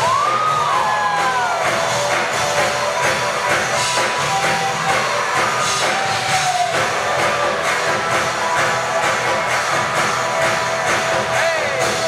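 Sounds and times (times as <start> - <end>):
live band playing dance music: 0.0 - 12.0
steady drum beat: 0.0 - 12.0.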